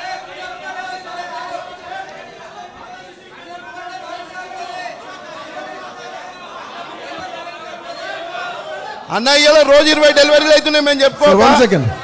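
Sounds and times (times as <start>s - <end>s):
chatter of many people: 0.0s - 12.0s.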